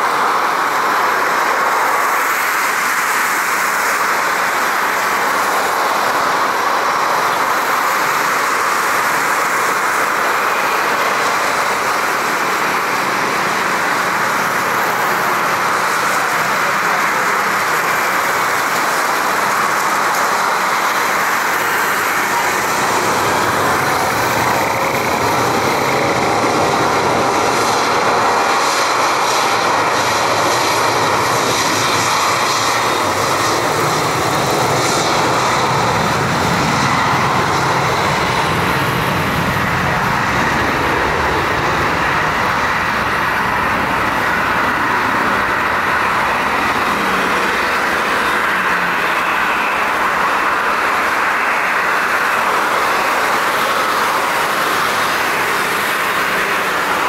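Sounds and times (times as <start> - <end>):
jet engines running loud: 0.0 - 57.0.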